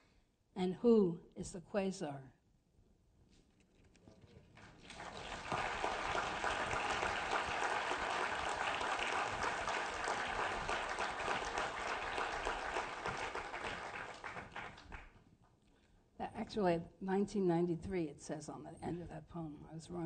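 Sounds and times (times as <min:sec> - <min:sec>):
audience applauding: 0:04.6 - 0:15.2.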